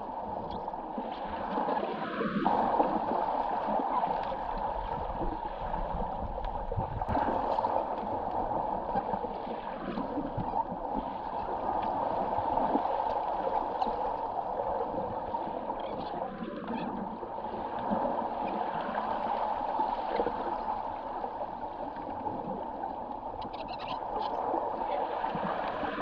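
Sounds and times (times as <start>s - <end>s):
muffled underwater water rush: 0.0s - 26.0s
faint underwater clicks: 0.4s - 0.8s, 6.2s - 10.4s, 21.9s - 24.6s.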